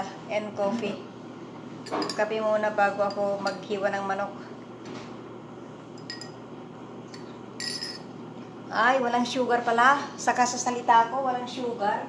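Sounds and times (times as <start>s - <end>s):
teaspoon clinking in a cup: 1.9s - 2.2s, 6.0s - 6.4s, 7.2s - 8.1s.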